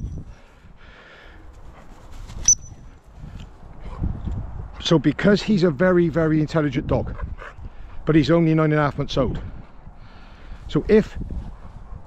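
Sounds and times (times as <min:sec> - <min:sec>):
wind noise: 0:00.0 - 0:12.0
rustling through long grass: 0:01.4 - 0:03.4.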